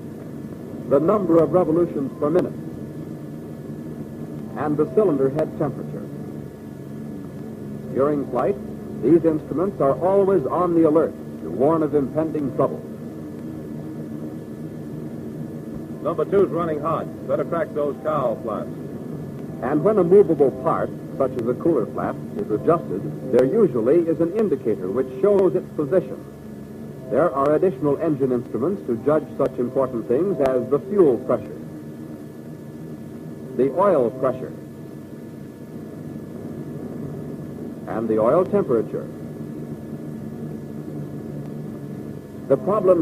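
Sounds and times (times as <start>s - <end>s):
film soundtrack hiss: 0.0s - 43.0s
propeller aircraft engines droning: 0.0s - 43.0s.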